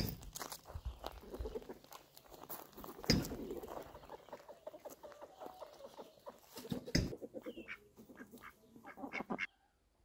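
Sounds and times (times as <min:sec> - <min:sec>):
chickens clucking: 0:00.8 - 0:09.8.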